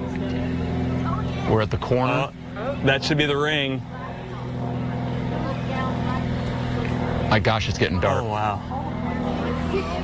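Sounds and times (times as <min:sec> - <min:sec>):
faint voices: 0:00.0 - 0:10.0
propeller aircraft engines droning: 0:00.0 - 0:10.0.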